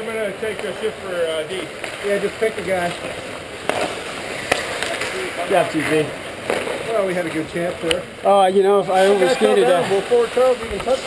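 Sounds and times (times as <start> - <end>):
skate blades scraping ice: 0.4 - 7.7.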